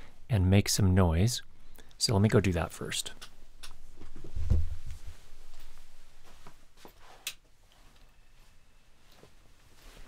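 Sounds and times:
faint rustling: 3.8 - 10.0.

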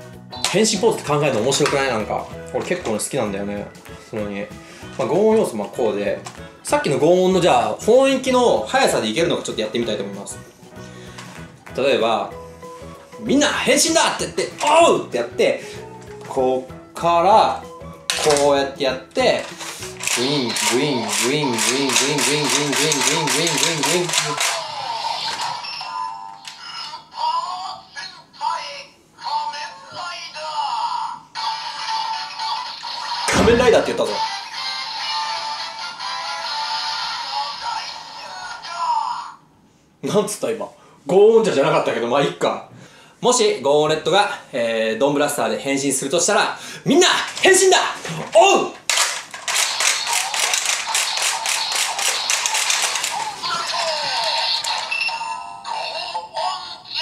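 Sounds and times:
toy gear rhythmic clicks: 19.4 - 26.7, 48.9 - 55.4
synthesized toy jingle: 53.7 - 56.3.

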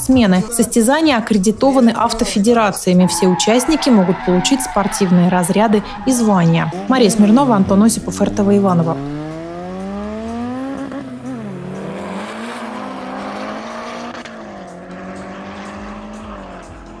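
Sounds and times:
drag car accelerating hard: 2.8 - 17.0.

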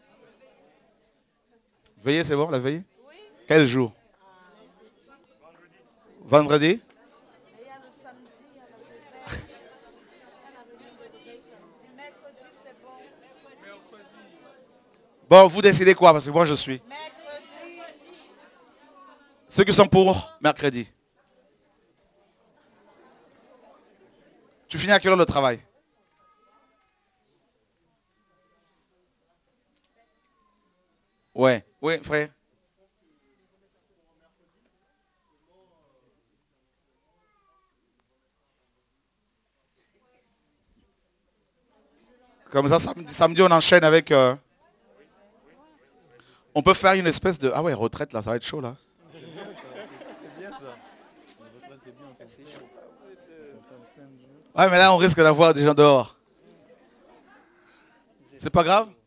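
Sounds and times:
faint distant voices: 0.0 - 47.2, 48.8 - 59.0
murmur of people talking: 0.0 - 59.0.

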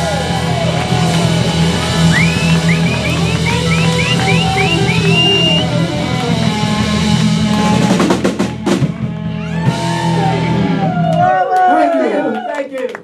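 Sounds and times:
lead guitar high notes run: 0.0 - 8.1
live rock band playing: 0.0 - 11.1.

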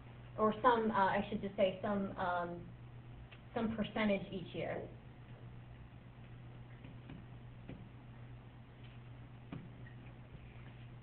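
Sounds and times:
low electrical hum: 0.0 - 11.0
stylus tapping on tablet screen: 6.7 - 7.9, 9.4 - 9.9.

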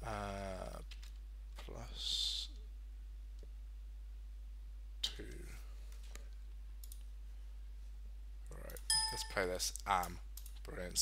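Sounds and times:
low electrical hum: 0.0 - 11.0
keyboard and mouse clicks: 6.8 - 7.1, 10.0 - 10.8.

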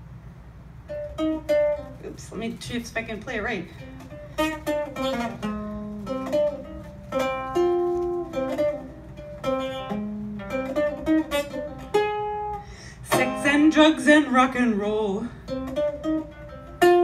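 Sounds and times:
ukulele plucked notes and chords: 0.9 - 2.1, 3.8 - 17.0
woman singing: 13.1 - 15.4.

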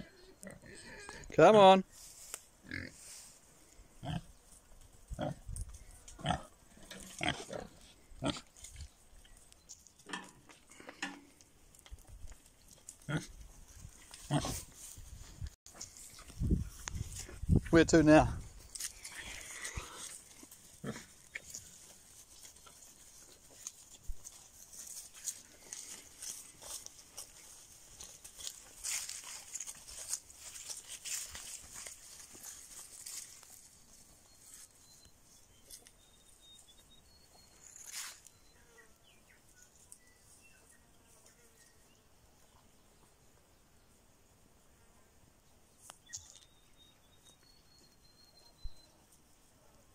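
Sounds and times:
rustling in dry leaves: 1.9 - 10.0, 10.7 - 17.6, 18.4 - 36.8, 37.5 - 38.5
footsteps through undergrowth: 1.9 - 17.7, 18.4 - 41.7
pigs grunting: 6.2 - 8.5, 13.0 - 13.4, 20.8 - 21.2.

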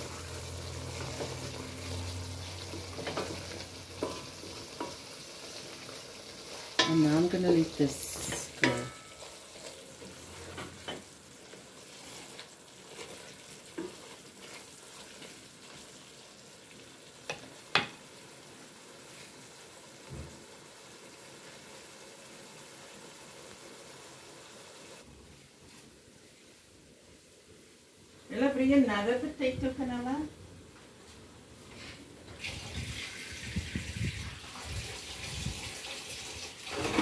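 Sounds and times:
curry sizzling in a pot: 0.0 - 29.4, 31.8 - 37.0
wooden spoon stirring: 2.5 - 17.9
spoon knocking against pot: 17.3 - 18.0.

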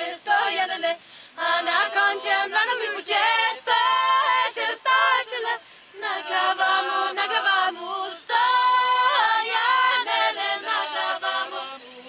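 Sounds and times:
breathy hiss: 0.0 - 12.0
women's choir singing a cappella: 0.0 - 12.0.

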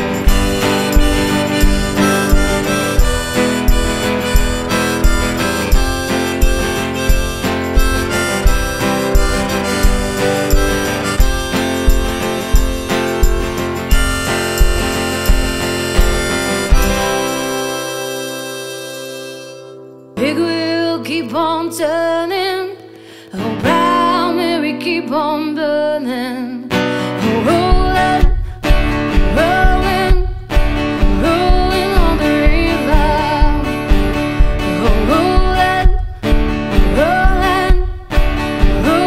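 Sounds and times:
steady low beat: 0.0 - 19.6
harmonica solo: 0.0 - 20.1
strummed acoustic guitar: 0.0 - 39.0
woman singing: 20.2 - 39.0.

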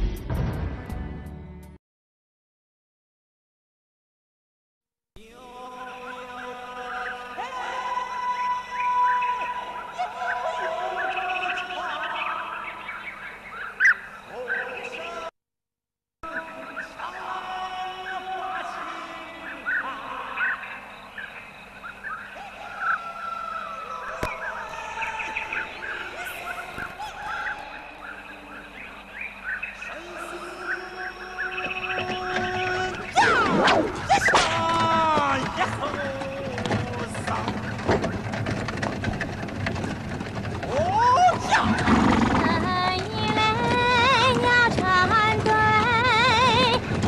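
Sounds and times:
birds chirping: 6.0 - 15.3, 16.2 - 47.0
woman singing: 42.4 - 46.9.

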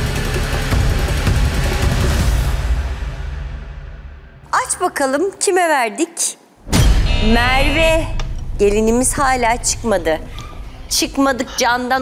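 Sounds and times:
tense suspense music: 0.0 - 4.5, 6.6 - 12.0.

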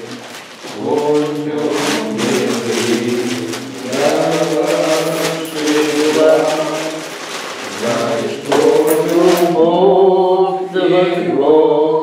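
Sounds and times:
voices chanting liturgy: 0.0 - 12.0.

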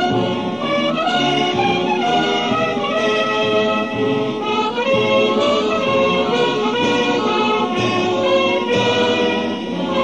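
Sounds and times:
wind band playing a march: 0.0 - 10.0.

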